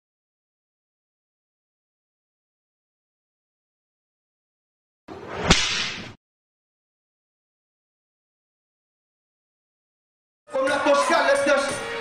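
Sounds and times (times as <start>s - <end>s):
whoosh with whip-like crack: 5.1s - 6.2s.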